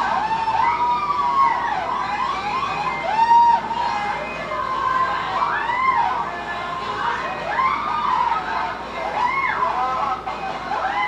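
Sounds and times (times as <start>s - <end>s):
siren-like wail: 0.0s - 6.3s.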